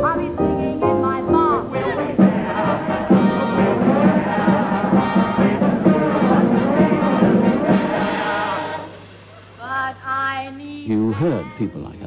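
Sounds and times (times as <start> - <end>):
band playing lively show tune: 1.3 - 9.5.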